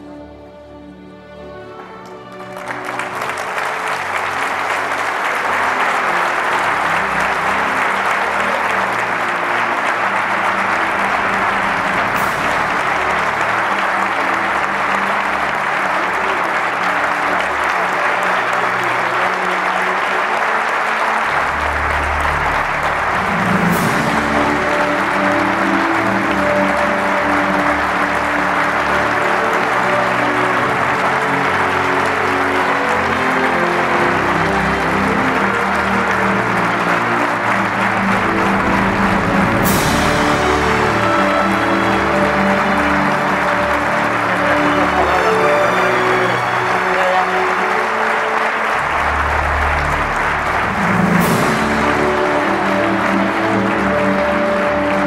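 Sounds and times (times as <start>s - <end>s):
audience applauding: 0.0s - 55.0s
music playing: 0.0s - 55.0s.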